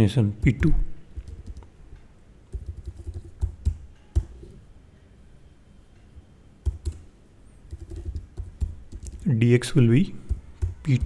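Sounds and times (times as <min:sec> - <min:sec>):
typing on computer keyboard: 0:01.2 - 0:01.7, 0:02.5 - 0:04.6, 0:06.6 - 0:07.1, 0:07.7 - 0:09.3, 0:10.2 - 0:11.0.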